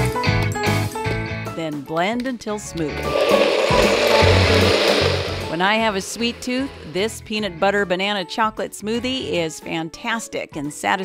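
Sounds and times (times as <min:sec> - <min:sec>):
blender blade whirring and grinding: 0:02.9 - 0:07.4.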